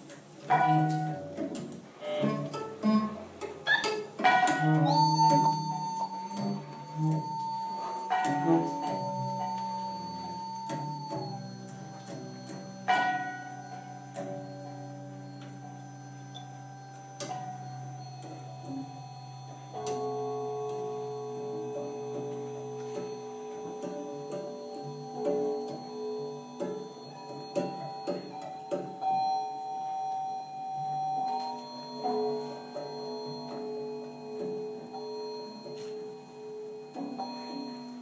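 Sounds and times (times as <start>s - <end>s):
cello: 0.5s - 29.2s
saxophone: 2.0s - 20.0s
percussion hits ringing: 4.2s - 29.6s
low synthesizer drone: 4.6s - 38.0s.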